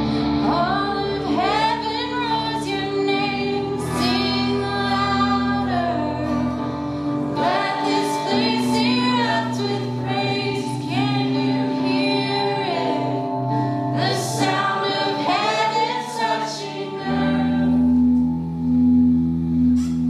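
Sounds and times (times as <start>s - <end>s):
guitar chords: 0.0s - 20.0s
voices singing: 0.4s - 6.5s, 7.2s - 18.2s.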